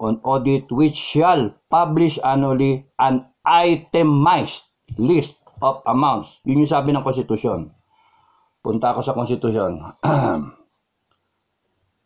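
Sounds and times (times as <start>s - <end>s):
man clearing his throat: 9.9s - 10.7s.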